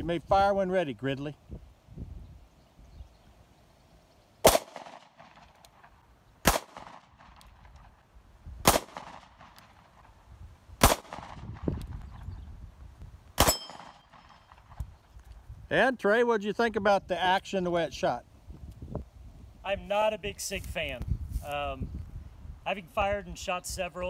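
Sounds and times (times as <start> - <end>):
pistol shots: 4.4 - 5.6, 6.4 - 7.6, 8.6 - 10.0, 10.8 - 11.7, 13.4 - 14.5.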